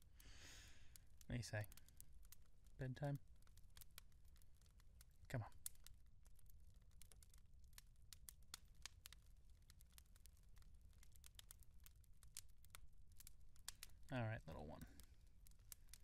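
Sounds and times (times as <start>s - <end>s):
faint clicks and crackles: 0.0s - 16.0s.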